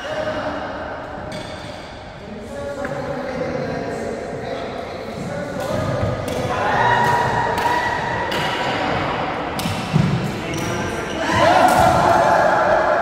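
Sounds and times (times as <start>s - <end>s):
racket striking shuttlecock: 9.5s - 10.8s.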